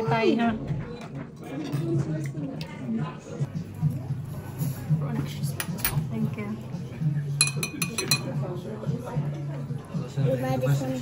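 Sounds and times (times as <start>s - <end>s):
spoon clinking on ceramic bowl: 7.4s - 8.4s.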